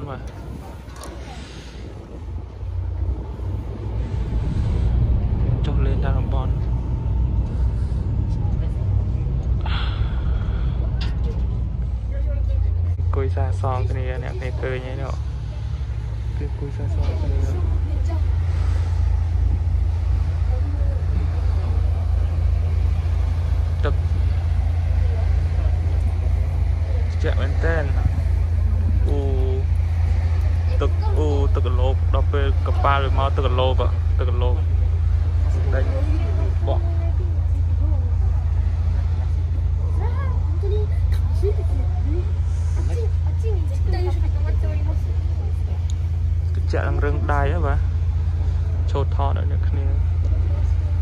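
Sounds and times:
people talking: 0.0s - 2.1s, 5.5s - 6.7s, 8.2s - 18.8s, 19.8s - 51.0s
boat engine droning: 0.0s - 51.0s.

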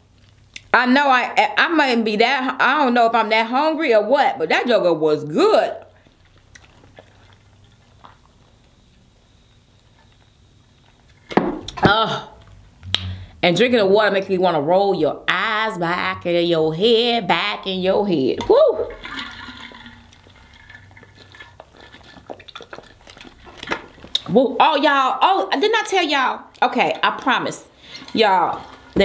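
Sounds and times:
mouth clicks: 12.8s - 13.4s
sips and swallows: 19.2s - 24.3s.

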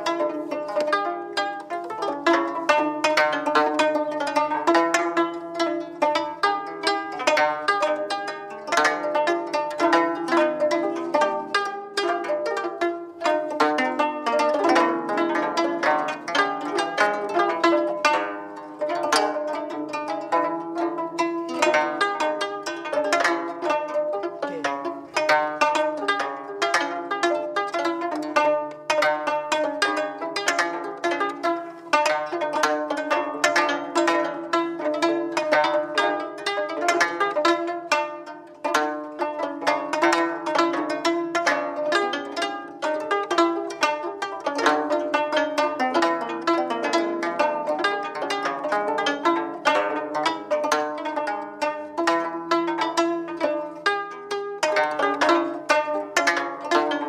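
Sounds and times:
plucked zither notes: 0.0s - 57.0s.

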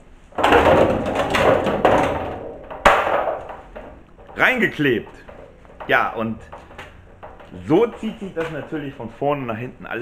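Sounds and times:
rustling and scraping handling noise: 1.1s - 9.8s.

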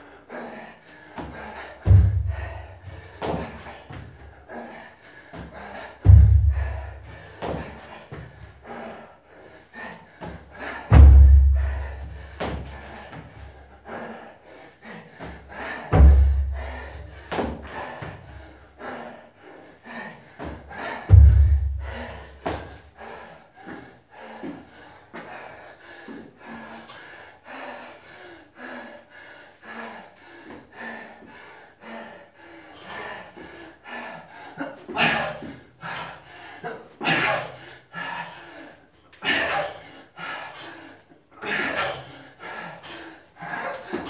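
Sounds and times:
feet thudding on wooden box: 1.9s - 4.1s, 5.4s - 8.3s, 15.9s - 16.7s, 21.1s - 22.6s.

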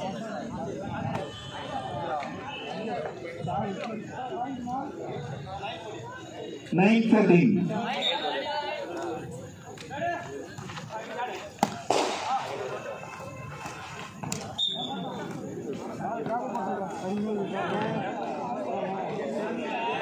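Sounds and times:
chatter of people: 0.0s - 20.0s.

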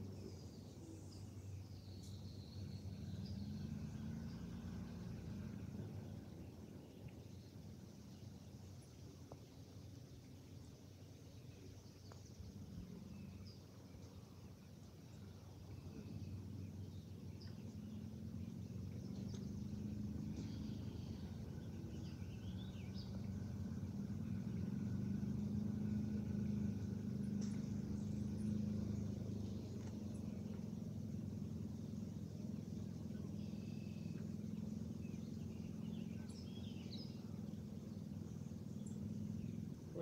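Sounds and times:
birds chirping: 0.0s - 40.0s
low motor hum: 0.0s - 40.0s.

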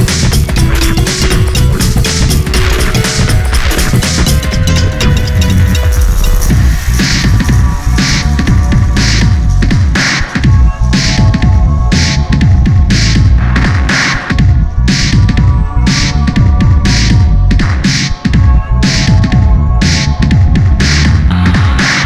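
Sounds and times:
snare or hi-hat beat: 0.0s - 19.2s
throbbing bass line: 0.0s - 22.0s.

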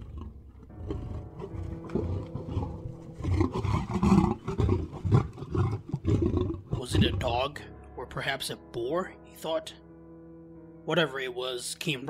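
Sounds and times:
tiger growling and grunting: 0.0s - 7.5s.

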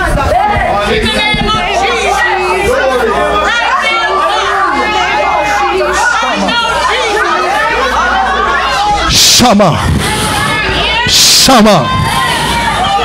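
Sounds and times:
congregation praying aloud: 0.0s - 13.0s.

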